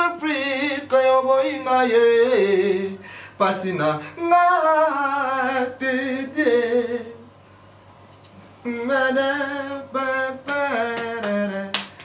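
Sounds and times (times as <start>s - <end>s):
person singing unaccompanied: 0.0s - 7.3s, 8.6s - 12.0s.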